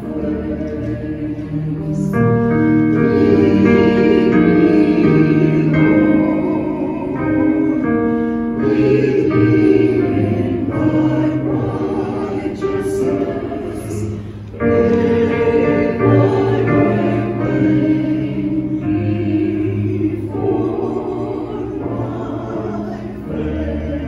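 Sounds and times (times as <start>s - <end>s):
church choir singing: 0.0s - 24.0s.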